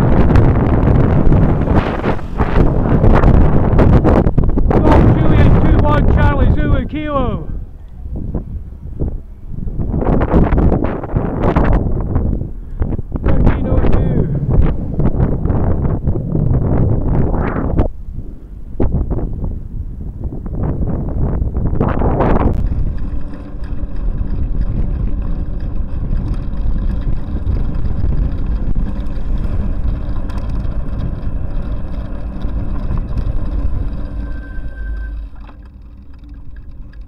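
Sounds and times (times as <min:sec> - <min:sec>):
road and traffic rumble: 0:00.0 - 0:37.0
wind buffeting microphone: 0:00.0 - 0:37.0.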